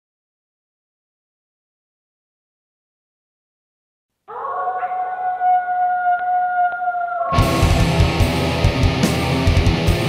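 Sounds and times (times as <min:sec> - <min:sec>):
muffled wolf howl: 0:04.3 - 0:08.1.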